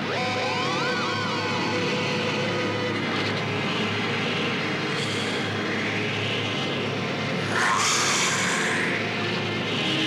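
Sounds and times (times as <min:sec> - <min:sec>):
steady noisy wash: 0:07.2 - 0:09.6.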